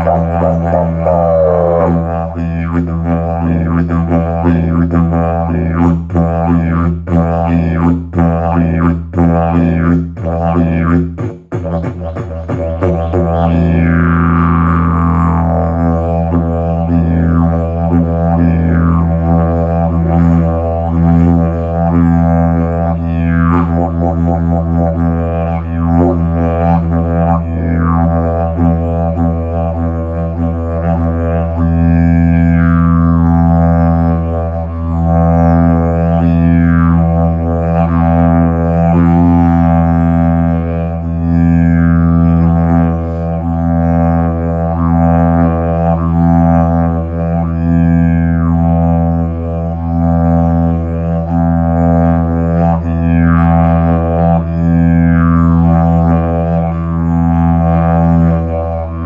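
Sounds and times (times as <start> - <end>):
didgeridoo droning: 0.0 - 59.0.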